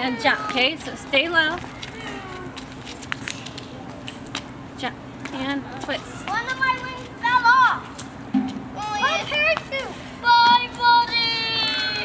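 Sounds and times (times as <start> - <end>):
children shouting: 1.7 - 2.6, 8.8 - 12.0
child's long drawn-out cry: 2.0 - 2.6.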